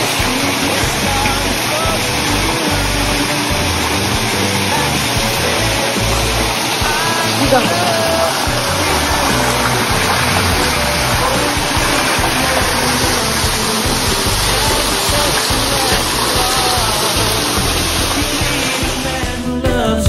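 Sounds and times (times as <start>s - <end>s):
water rushing down rock wall: 0.0s - 19.4s
music playing: 0.0s - 20.0s.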